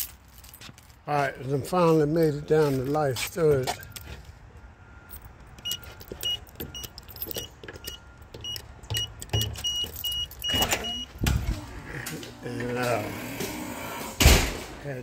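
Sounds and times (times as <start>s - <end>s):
keys jangling: 0.0s - 1.0s, 5.1s - 11.0s
short high beeps: 5.6s - 11.2s
door opening thump: 14.2s - 14.8s.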